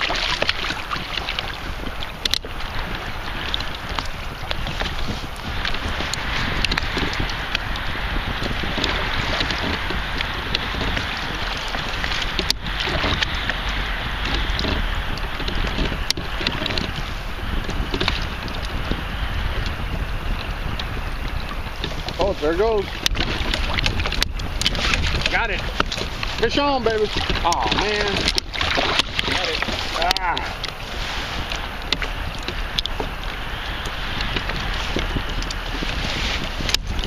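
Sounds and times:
water sloshing against hull: 0.0 - 37.0
wind rumbling on microphone: 0.0 - 37.0
faint clicks: 1.2 - 2.4, 31.4 - 36.0.

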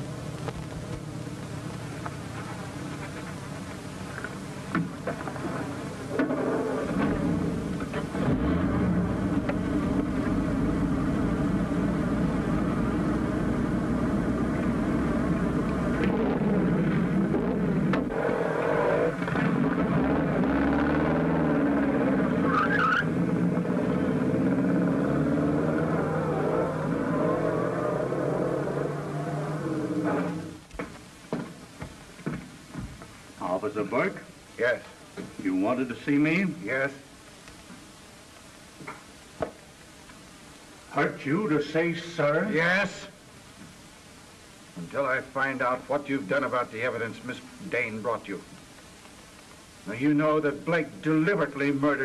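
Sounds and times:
car engine revving and pulling away: 6.2 - 30.6.

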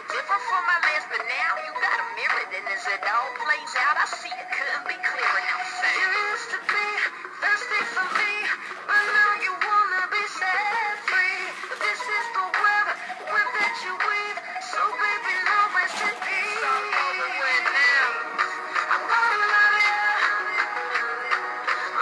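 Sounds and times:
pop song with processed vocals: 0.0 - 22.0.

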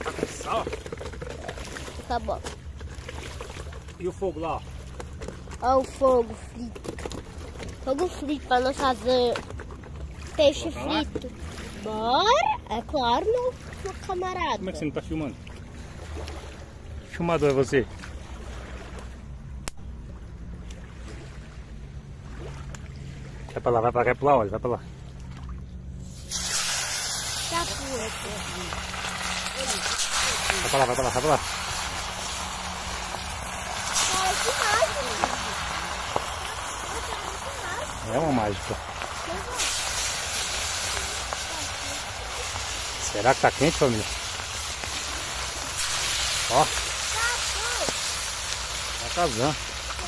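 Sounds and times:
oil sizzling in a frying pan: 26.1 - 50.0.

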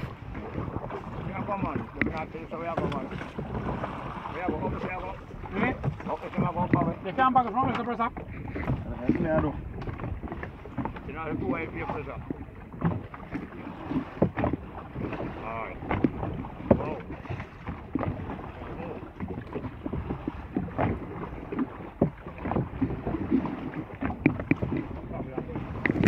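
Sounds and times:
paddle strokes splashing: 0.0 - 26.0
wind on microphone: 0.0 - 26.0.

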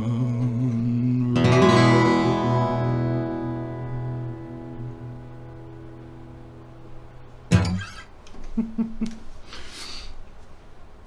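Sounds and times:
man chuckling: 7.7 - 9.3.

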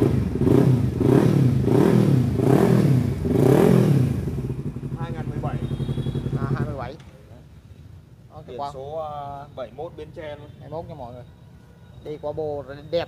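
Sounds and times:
motorcycle engine revving: 0.0 - 7.0.

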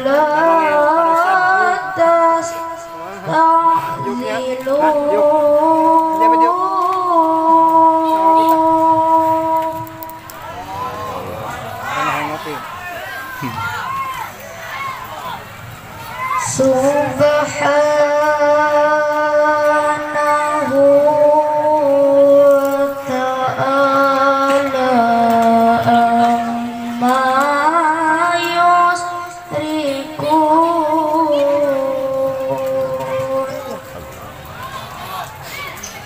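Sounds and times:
boy reciting through loudspeaker: 0.0 - 12.7, 16.1 - 36.0
faint voices: 0.0 - 36.0.

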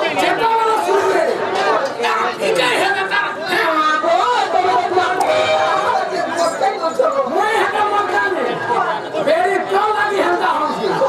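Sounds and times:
people talking over each other: 0.0 - 11.0.

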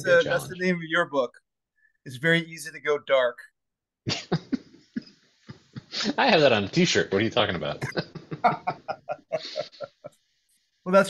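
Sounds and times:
person laughing softly: 7.8 - 10.1.

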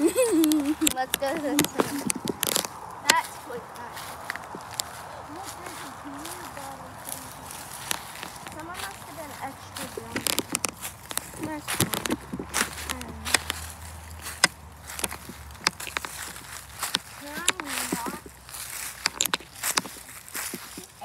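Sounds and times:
footsteps crunching dry leaves: 0.0 - 21.0.

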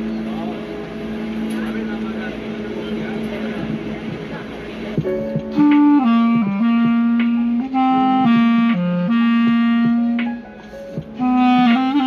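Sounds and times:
lofi jazz backing track: 0.0 - 12.0
clarinet: 5.1 - 12.0.

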